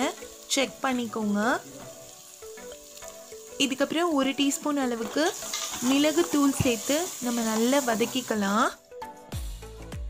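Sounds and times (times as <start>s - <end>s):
food sizzling in a pan: 0.0s - 8.8s
background music with held notes: 0.0s - 10.0s.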